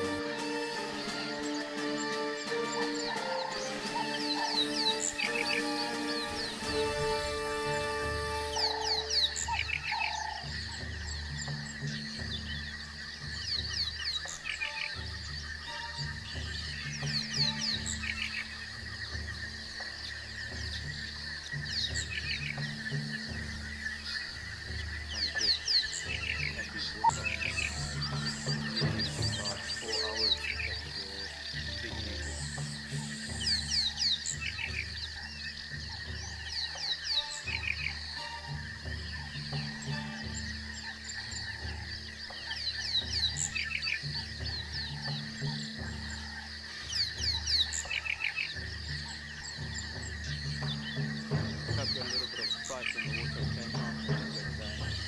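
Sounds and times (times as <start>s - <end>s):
background music: 0.0s - 55.0s
low croaking calls: 0.0s - 55.0s.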